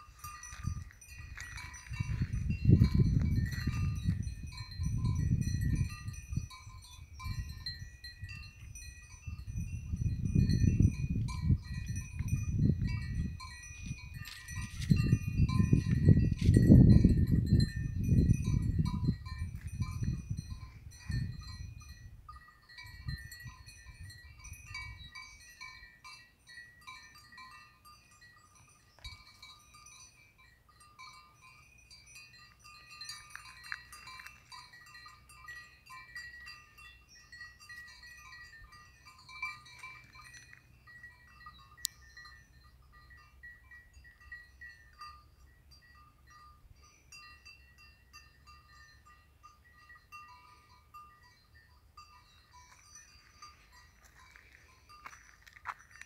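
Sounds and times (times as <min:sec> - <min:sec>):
wind buffeting microphone: 0:00.0 - 0:25.9
faint high ringing tones: 0:00.0 - 0:56.0.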